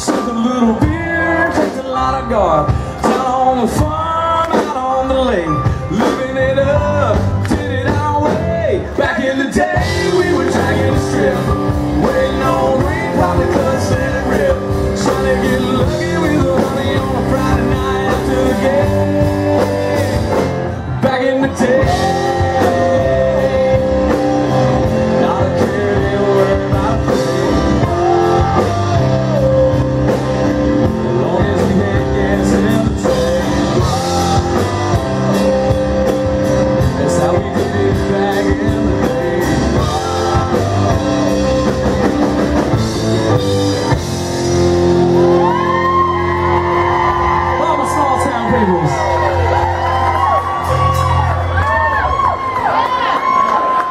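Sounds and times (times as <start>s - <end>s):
lead guitar line bending: 0.0s - 52.1s
country rock band playing: 0.0s - 53.9s.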